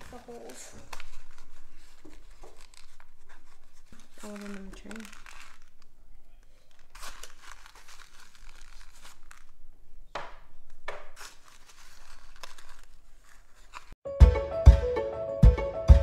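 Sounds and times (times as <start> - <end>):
paper packet crinkling: 0.0 - 9.7, 11.1 - 14.0.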